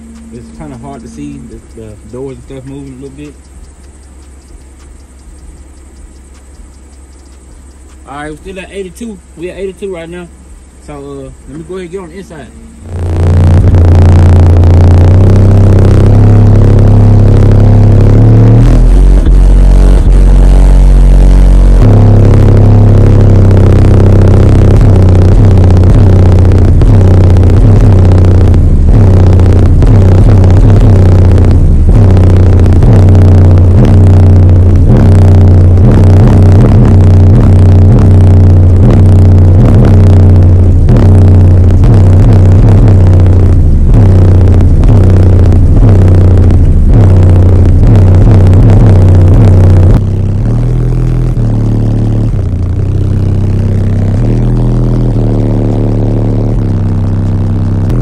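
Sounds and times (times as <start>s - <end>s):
bass-heavy music from subwoofer: 0.0s - 58.0s.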